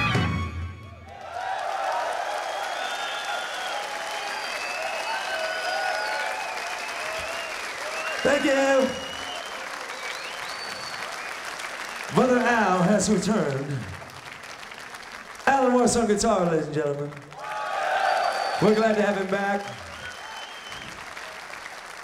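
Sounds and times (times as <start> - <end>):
audience applauding and cheering: 0.0 - 22.0
whistles: 2.4 - 12.2, 17.9 - 21.4
man speaking over pa: 8.2 - 9.1, 12.1 - 14.0, 15.5 - 17.2, 18.6 - 19.9.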